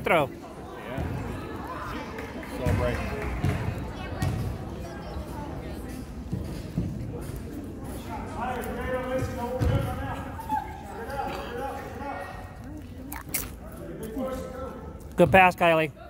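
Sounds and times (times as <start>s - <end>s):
background murmur: 0.0s - 16.0s
spectators chattering: 0.0s - 16.0s.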